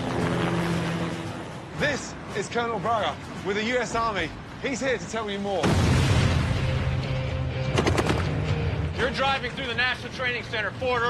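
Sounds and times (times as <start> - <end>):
dramatic music: 5.6 - 10.8
rapid gunfire: 7.6 - 8.5.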